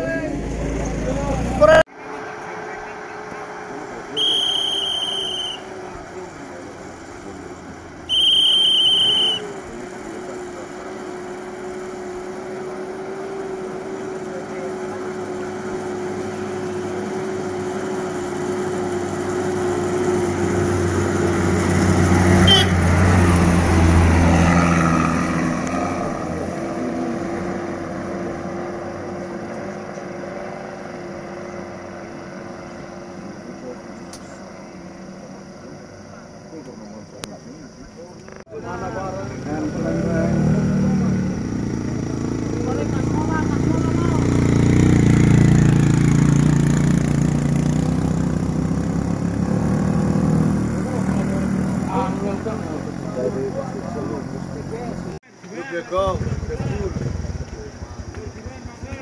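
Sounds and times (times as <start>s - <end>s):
van engine passing: 0.0s - 59.0s
loud high-pitched beeps: 4.2s - 5.6s, 8.1s - 9.5s.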